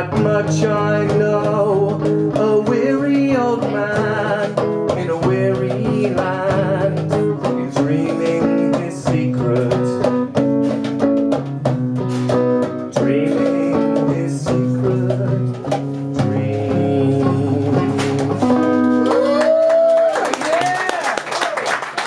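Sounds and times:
person singing with vibrato: 0.0s - 10.2s, 12.8s - 19.4s
acoustic guitar strumming: 0.0s - 19.2s.

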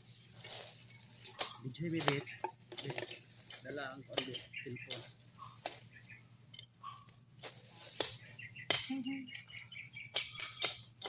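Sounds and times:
leaves rustling: 0.0s - 10.0s
plant stems snapping: 0.4s - 5.9s.

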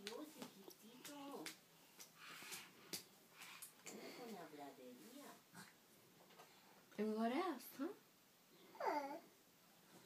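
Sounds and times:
baby vocal sounds: 8.6s - 9.4s.

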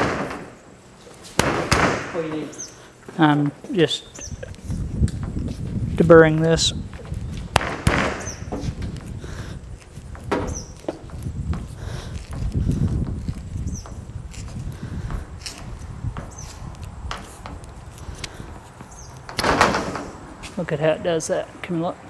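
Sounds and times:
handling knocks: 6.3s - 9.1s, 10.1s - 14.2s, 18.9s - 20.2s.

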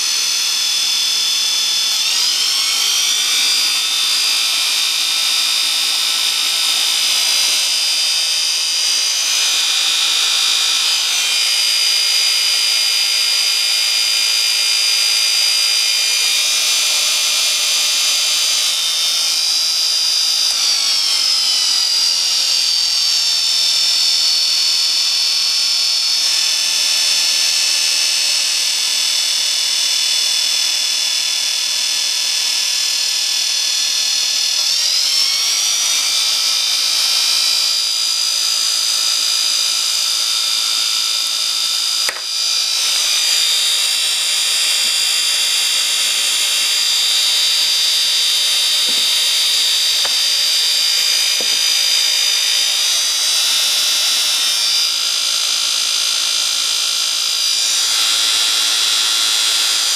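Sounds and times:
small motor fan whine: 0.0s - 59.9s.

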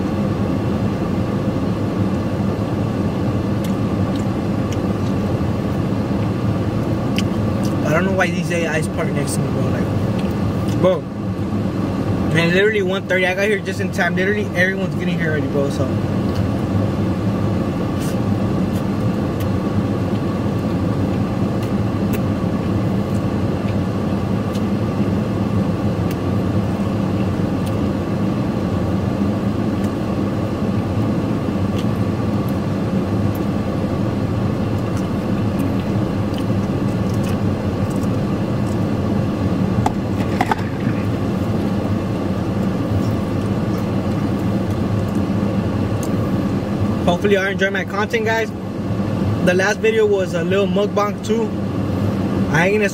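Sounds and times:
air-conditioning blower: 0.0s - 52.9s
vehicle engine idling: 0.0s - 52.9s.

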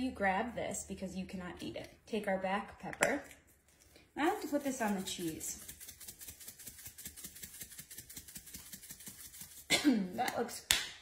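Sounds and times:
spice shaker rattling: 4.2s - 9.7s.

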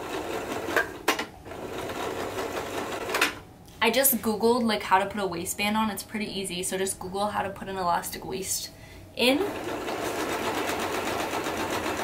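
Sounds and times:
sewing machine stitching: 1.5s - 3.3s, 9.5s - 12.0s.

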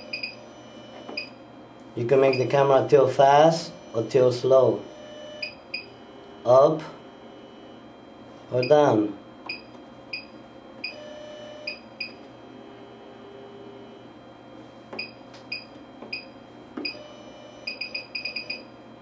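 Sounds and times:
electronic key beeps: 15.0s - 18.7s.

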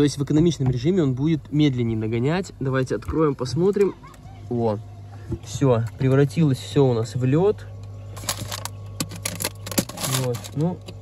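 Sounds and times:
fridge-freezer low hum: 0.0s - 11.0s
plastic wrappers crinkling: 8.2s - 10.7s.

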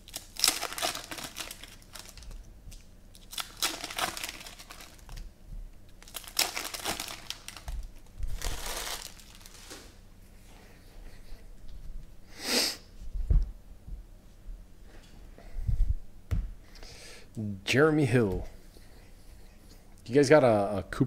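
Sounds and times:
foil wrapper crinkling and tearing: 0.0s - 5.3s, 6.0s - 9.9s.

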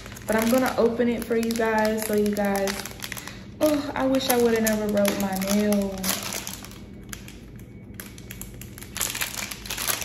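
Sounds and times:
fingernails tapping plastic packet: 0.0s - 10.0s.

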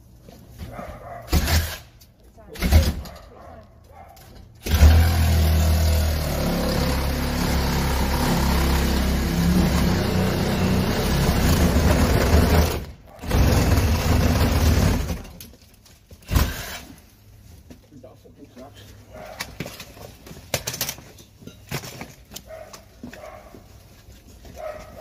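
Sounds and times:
power drill drilling into door: 1.3s - 1.9s, 4.6s - 15.3s, 16.2s - 17.0s.

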